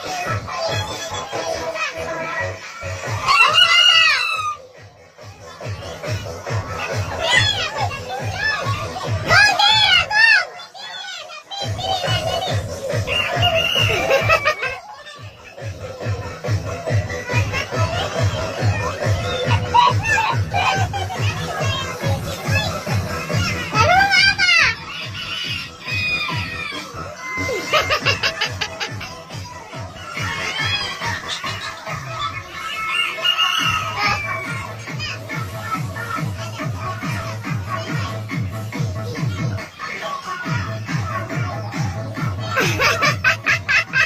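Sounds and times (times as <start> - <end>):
child shouting: 0.0 - 4.6, 6.8 - 15.4, 17.2 - 28.2
dance music with steady beat: 0.0 - 10.2, 11.6 - 44.0
children's voices: 0.0 - 44.0
dance music beat: 11.6 - 32.6
rooster crowing: 32.8 - 34.2.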